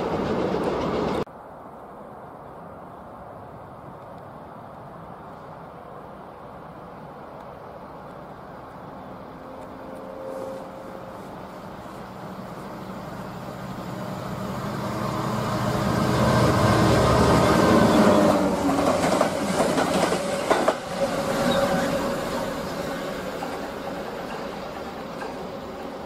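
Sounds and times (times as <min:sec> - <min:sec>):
diesel locomotive engine: 0:00.0 - 0:01.3, 0:07.4 - 0:26.0
train wheels clattering over rail joints: 0:17.2 - 0:21.9, 0:23.2 - 0:25.6.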